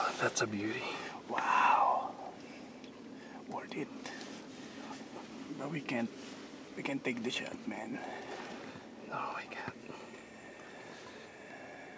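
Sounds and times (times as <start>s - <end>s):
faint background hiss: 0.0s - 11.9s
person whispering: 9.1s - 9.8s.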